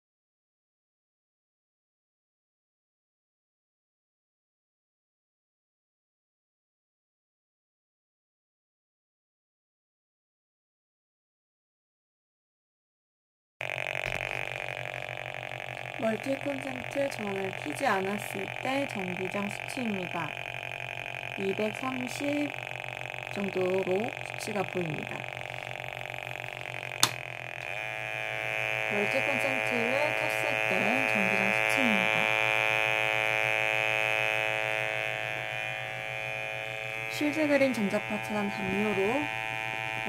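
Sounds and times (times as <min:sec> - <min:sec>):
pulsing electronic buzzing drone: 0:13.6 - 0:40.0.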